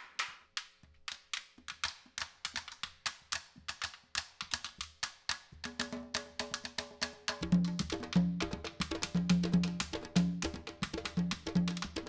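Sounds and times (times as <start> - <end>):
sticks clicking on drums: 0.0 - 5.8.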